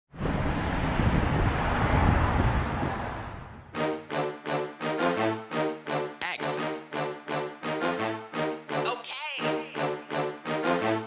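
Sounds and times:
dense rumbling outdoor noise: 0:00.1 - 0:03.8.

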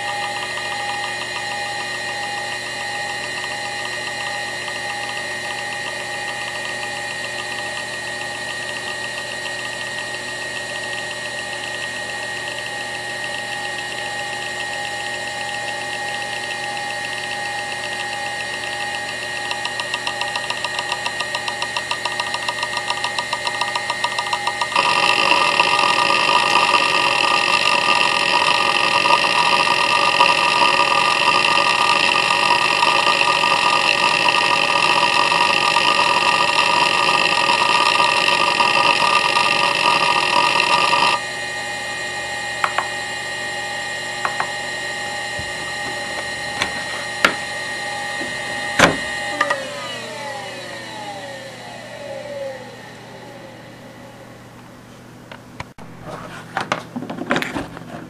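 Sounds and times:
hard drive spindle whine: 0:00.0 - 0:56.2.

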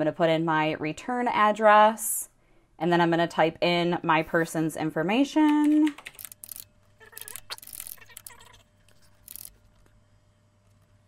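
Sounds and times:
computer keyboard typing: 0:05.6 - 0:09.5.

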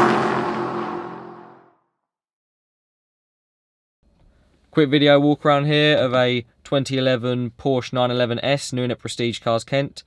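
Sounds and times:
car driving by with whoosh: 0:00.0 - 0:01.7.

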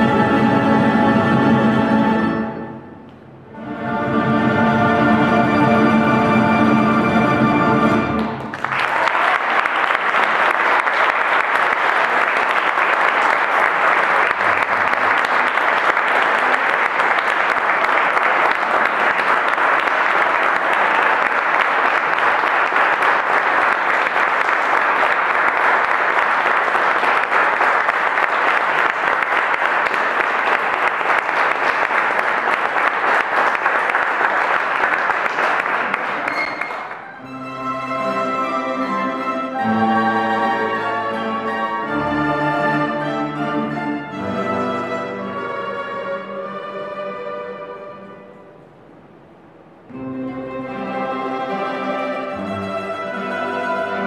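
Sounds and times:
plucked-string orchestra playing: 0:00.0 - 0:08.7, 0:36.2 - 0:49.0, 0:49.9 - 0:54.0
orchestra music: 0:00.0 - 0:09.2, 0:09.8 - 0:54.0
audience applauding: 0:08.0 - 0:37.5.

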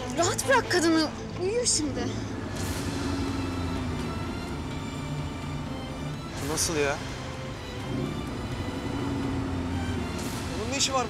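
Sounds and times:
background music: 0:00.0 - 0:11.0
van engine running: 0:00.0 - 0:11.0.

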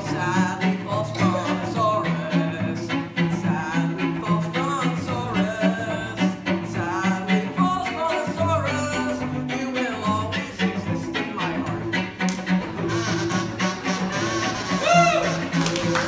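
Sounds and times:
person singing: 0:00.0 - 0:12.0
cello bowed rhythmically: 0:00.0 - 0:16.0.

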